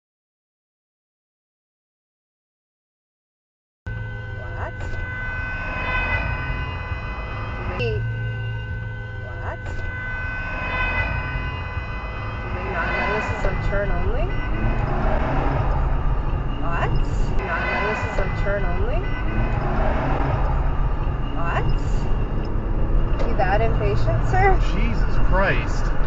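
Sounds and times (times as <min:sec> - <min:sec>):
car horn blast: 0:03.9 - 0:16.8, 0:17.4 - 0:25.9
car engine and road rumble: 0:03.9 - 0:26.0.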